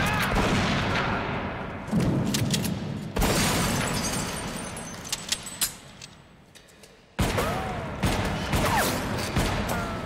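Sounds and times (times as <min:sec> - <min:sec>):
glass and debris clinking: 0:03.4 - 0:06.2.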